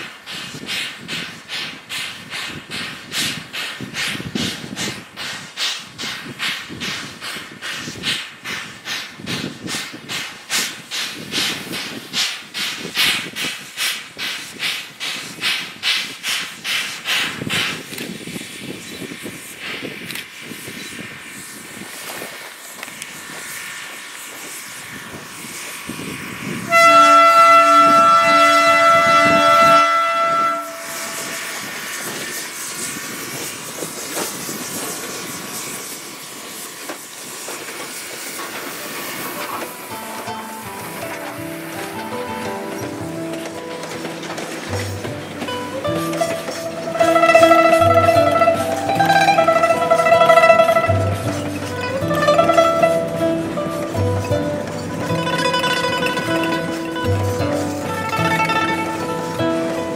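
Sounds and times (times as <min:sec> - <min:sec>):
steam locomotive exhaust chuffs: 0:00.0 - 0:59.9
train rolling with hiss: 0:00.0 - 0:59.9.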